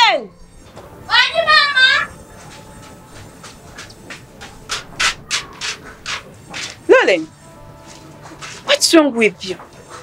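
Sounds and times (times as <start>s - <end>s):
footsteps scuffing on sandy dirt: 2.4s - 6.9s.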